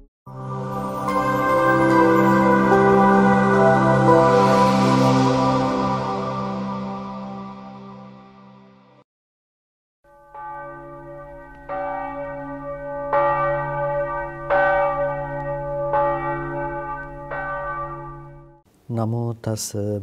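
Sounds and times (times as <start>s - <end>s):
deep bell ringing: 0.3s - 7.4s, 10.1s - 18.6s.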